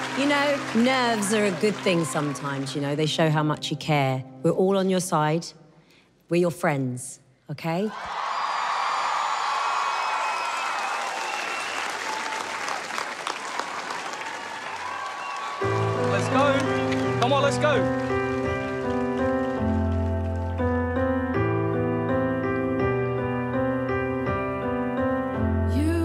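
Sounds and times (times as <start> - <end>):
crowd whooping: 0.0 - 2.8, 8.0 - 17.1
audience applauding and cheering: 0.0 - 3.2, 8.0 - 21.4
slow piano chords: 15.6 - 26.0.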